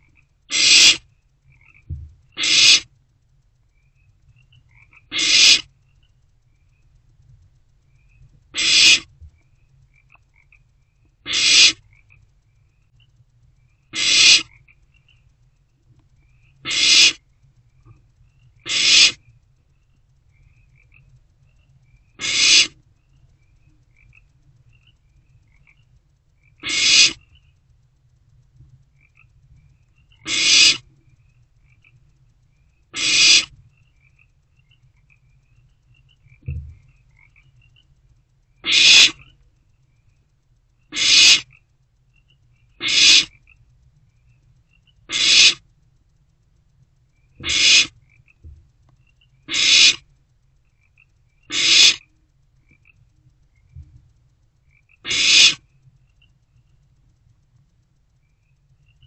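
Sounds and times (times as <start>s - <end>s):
owlets hissing food-begging calls: 0.5s - 1.0s, 2.4s - 2.9s, 5.1s - 5.7s, 8.6s - 9.1s, 11.3s - 11.8s, 14.0s - 14.5s, 16.6s - 17.2s, 18.6s - 19.2s, 22.2s - 22.8s, 26.6s - 27.2s, 30.2s - 30.8s, 33.0s - 33.6s, 38.6s - 39.3s, 40.9s - 41.5s, 42.8s - 43.3s, 45.1s - 45.6s, 47.4s - 48.0s, 49.5s - 50.0s, 51.5s - 52.0s, 55.0s - 55.6s
short low thump: 1.9s - 2.2s, 36.4s - 36.8s.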